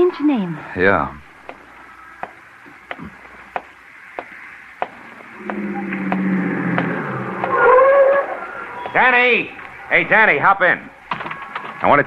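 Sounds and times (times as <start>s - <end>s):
footsteps walking: 1.4s - 9.9s
low held tone: 5.4s - 8.9s.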